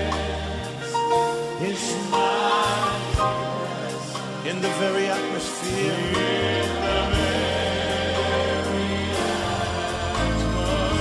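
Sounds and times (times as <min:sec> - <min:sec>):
choir singing: 0:00.0 - 0:11.0
instrumental backing: 0:00.0 - 0:11.0
low bass notes: 0:06.7 - 0:11.0.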